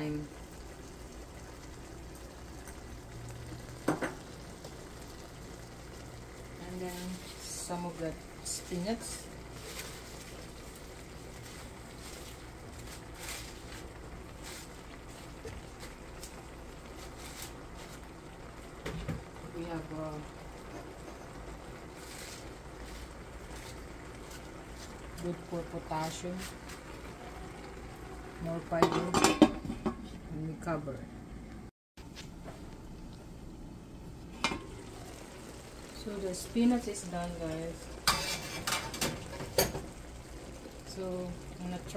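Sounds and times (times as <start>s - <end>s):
covered pan simmering hiss: 0.0s - 41.9s
spinach leaves rustling: 8.4s - 18.1s, 21.7s - 27.0s.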